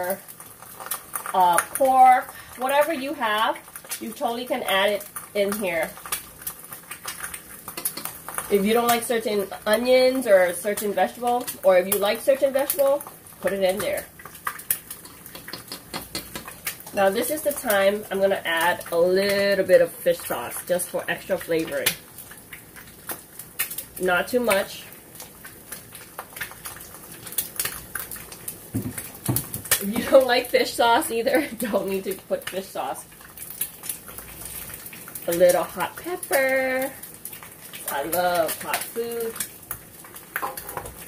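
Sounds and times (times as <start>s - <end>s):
noodles boiling in saucepan: 0.0s - 41.0s
bubbles popping and clicking: 11.5s - 17.8s.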